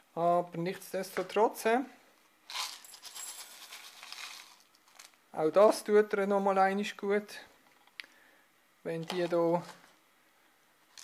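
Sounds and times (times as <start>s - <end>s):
clay granules rattling into cup: 2.5s - 5.2s.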